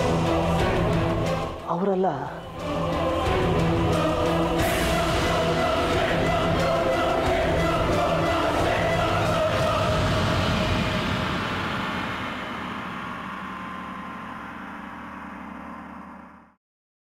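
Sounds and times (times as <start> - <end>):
dramatic sustained chords score: 0.0 - 16.6.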